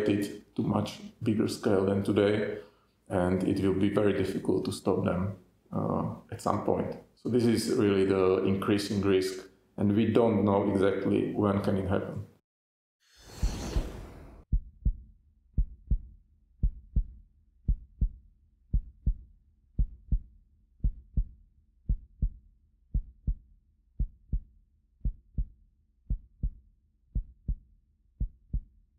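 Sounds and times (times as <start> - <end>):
heartbeat thumps: 14.5 - 15.0, 15.6 - 19.2, 19.8 - 21.3, 21.9 - 23.4, 24.0 - 25.5, 26.1 - 27.6, 28.2 - 28.7.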